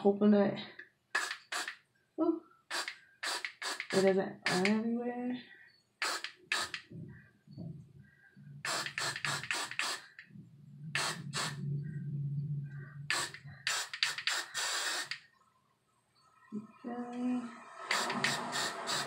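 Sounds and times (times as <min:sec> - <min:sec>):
aerosol hairspray hissing: 0:01.2 - 0:01.8, 0:02.7 - 0:04.7, 0:06.0 - 0:06.9, 0:08.7 - 0:10.2, 0:11.0 - 0:11.6, 0:13.1 - 0:15.3, 0:17.8 - 0:19.0.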